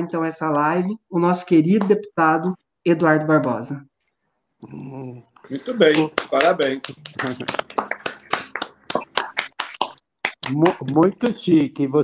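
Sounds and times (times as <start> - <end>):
people clapping: 5.5 - 11.4.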